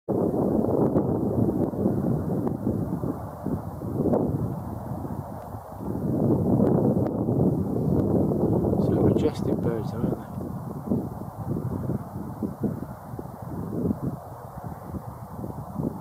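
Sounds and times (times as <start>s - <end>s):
wind buffeting microphone: 0.1s - 16.0s.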